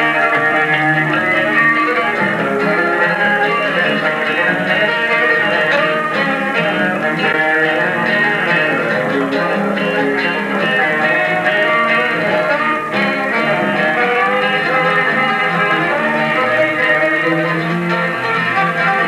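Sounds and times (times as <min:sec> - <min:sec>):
bowed fiddle melody: 0:00.0 - 0:19.0
guitar accompaniment: 0:00.0 - 0:19.0.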